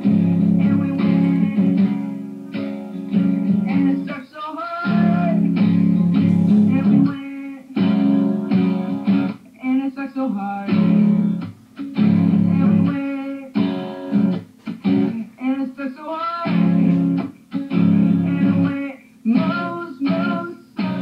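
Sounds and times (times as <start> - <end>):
acoustic guitar strumming: 0.0 - 9.9, 10.6 - 21.0
young man singing: 0.0 - 11.4, 12.2 - 14.2, 15.0 - 21.0.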